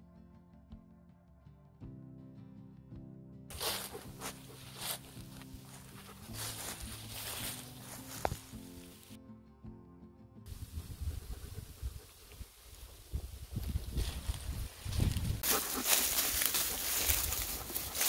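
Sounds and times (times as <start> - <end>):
soft background music: 0.0 - 11.8, 13.7 - 18.0
footsteps in dry grass and leaves: 3.5 - 9.2, 10.5 - 18.0
wind rumbling on microphone: 10.5 - 18.0.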